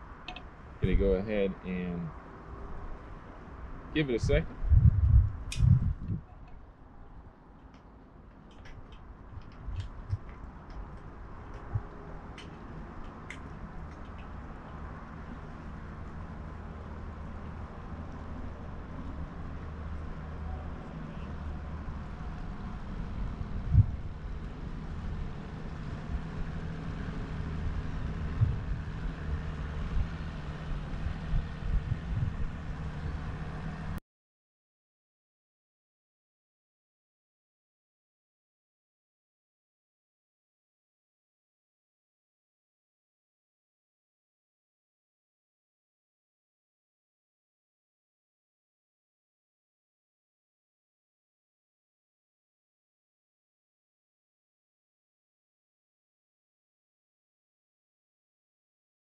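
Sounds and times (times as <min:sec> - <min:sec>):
light ticks: 0:07.6 - 0:14.4
motorboat engine droning: 0:11.1 - 0:34.0.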